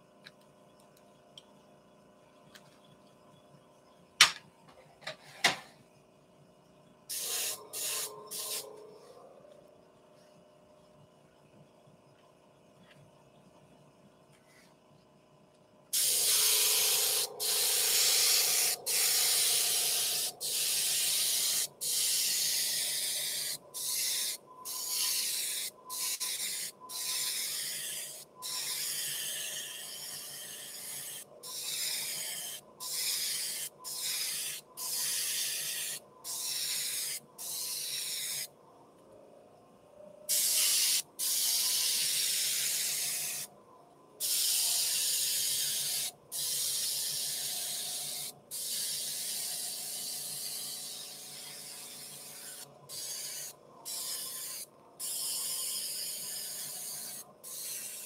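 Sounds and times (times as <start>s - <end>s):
airbrush spraying hiss: 7.1s - 8.8s, 15.9s - 38.5s, 40.3s - 43.5s, 44.2s - 58.0s.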